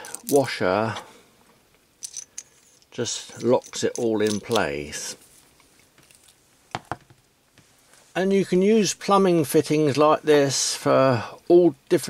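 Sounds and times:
quiet handling: 0:02.8 - 0:08.2
metal object knocking on a mat: 0:06.8 - 0:07.2.

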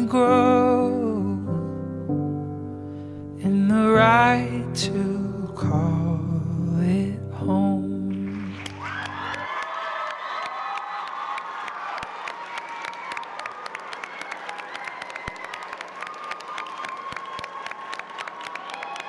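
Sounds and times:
clapping: 0:08.3 - 0:19.0
audience cheering: 0:08.4 - 0:19.0.

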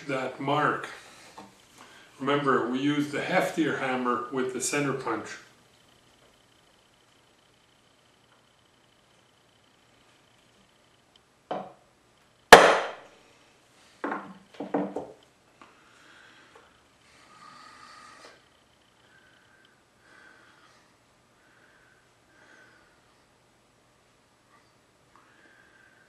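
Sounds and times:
hammer striking metal punch: 0:12.5 - 0:13.1.

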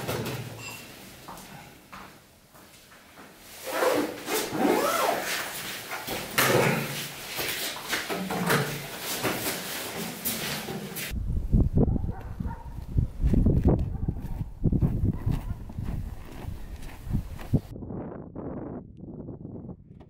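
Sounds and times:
wind on microphone: 0:11.1 - 0:20.0
footsteps crunching on snow: 0:12.2 - 0:17.7.

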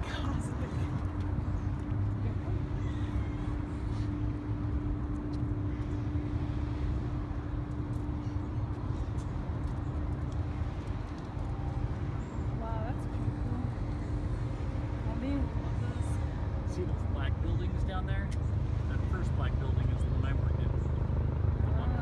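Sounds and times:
constant hum: 0:00.0 - 0:22.0
low rumble of traffic: 0:00.0 - 0:22.0.

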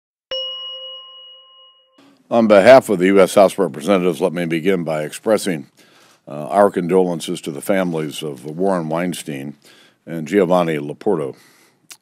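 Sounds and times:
bell-like ding: 0:00.3 - 0:02.2.

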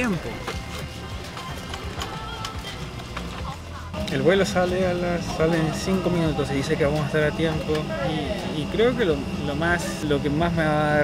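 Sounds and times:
background music with clicking beat: 0:00.0 - 0:04.7.

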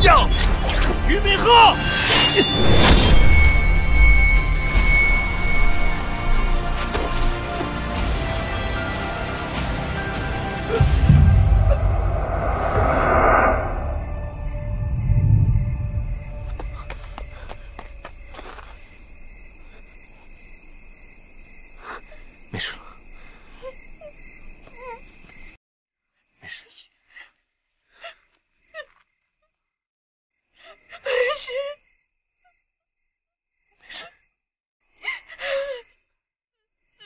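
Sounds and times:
crickets chirring: 0:00.1 - 0:25.6
woman sobbing: 0:31.0 - 0:31.8.

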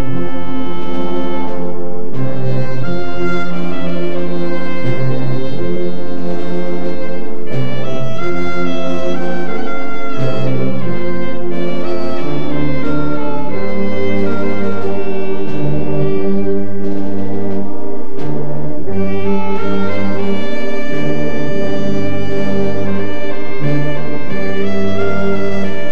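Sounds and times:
slow orchestral brass and strings: 0:00.0 - 0:25.9.

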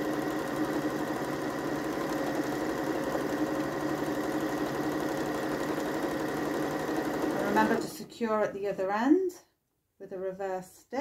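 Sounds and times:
electric sewing machine stitching: 0:00.0 - 0:08.6.

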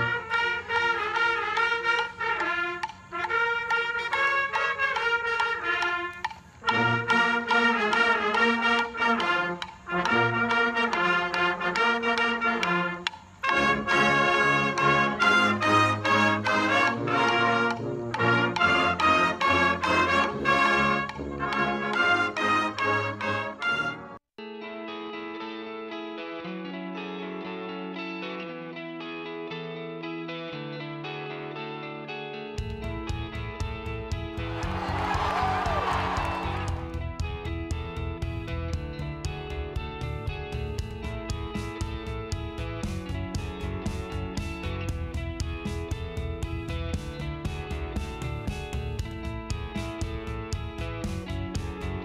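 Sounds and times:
marching band brass playing: 0:00.0 - 0:24.2, 0:34.4 - 0:37.2.

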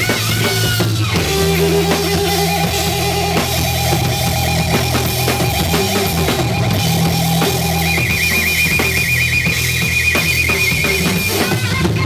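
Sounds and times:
live blues-rock band: 0:00.0 - 0:12.0.

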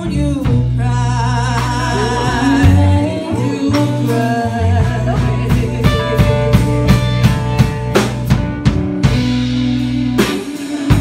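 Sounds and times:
woman singing: 0:00.0 - 0:08.0, 0:09.4 - 0:11.0
live blues band: 0:00.0 - 0:11.0.

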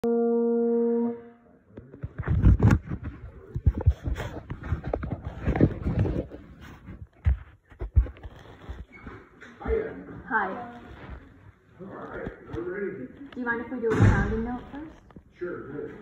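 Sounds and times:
held brass note: 0:00.0 - 0:01.6
handling noise rustling and knocks: 0:02.0 - 0:11.4.

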